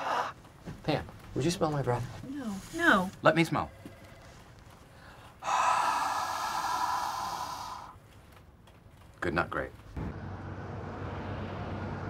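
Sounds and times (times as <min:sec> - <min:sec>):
man breathing out hard: 0:05.0 - 0:08.0.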